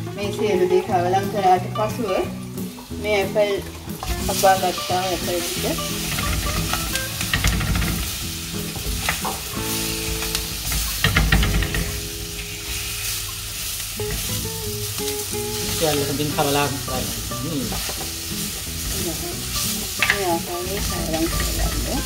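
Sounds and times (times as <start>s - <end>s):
apple slices sizzling in oil: 0.0s - 22.0s.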